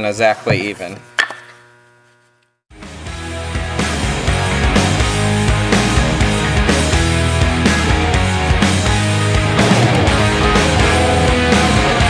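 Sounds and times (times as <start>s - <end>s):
loud rock music: 2.7s - 12.0s.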